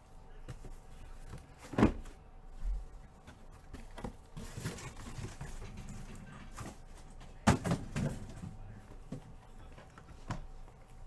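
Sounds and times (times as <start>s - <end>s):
cardboard boxes knocking on table: 7.4s - 8.4s.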